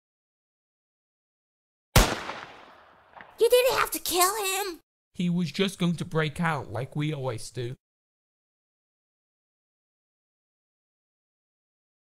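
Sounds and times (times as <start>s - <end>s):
pistol gunshot: 2.0s - 3.4s.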